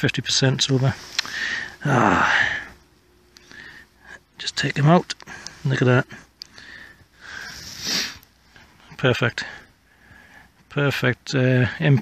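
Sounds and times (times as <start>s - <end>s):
person breathing out: 1.1s - 2.8s.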